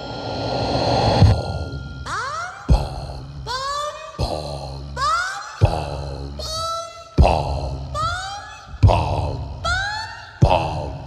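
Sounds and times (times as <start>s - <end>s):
swooping pitched tones: 0.0s - 5.8s
grunt-like vocal sounds: 1.2s - 11.0s
deep electronic thumps: 2.7s - 3.6s, 7.2s - 8.1s, 8.7s - 9.7s.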